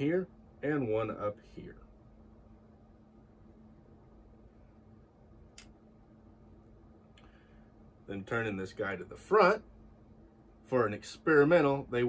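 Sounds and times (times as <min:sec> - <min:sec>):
faint steady hum: 0:00.0 - 0:12.0
soft click: 0:05.5 - 0:05.8.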